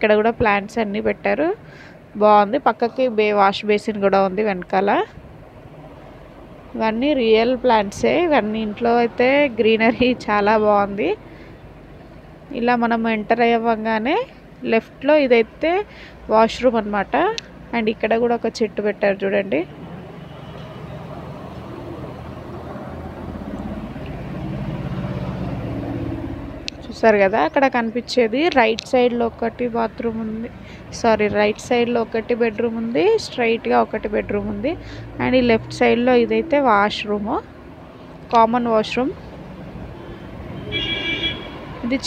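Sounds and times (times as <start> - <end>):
low engine hum: 19.5 - 42.0.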